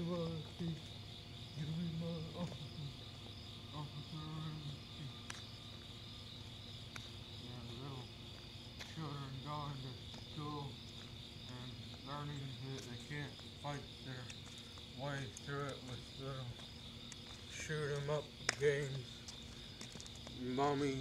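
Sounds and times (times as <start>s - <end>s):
crickets chirring: 0.0s - 21.0s.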